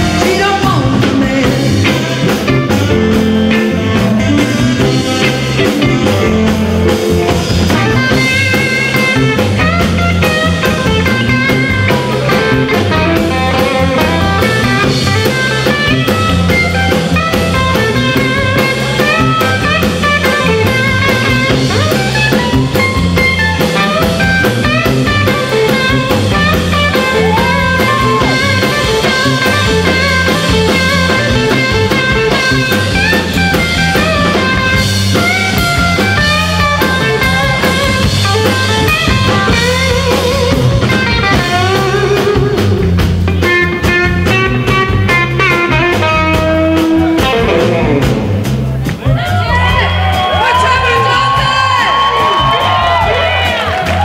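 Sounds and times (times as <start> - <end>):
bass line: 0.0 - 54.0
drum kit: 0.0 - 54.0
electric guitar lead lines: 0.0 - 54.0.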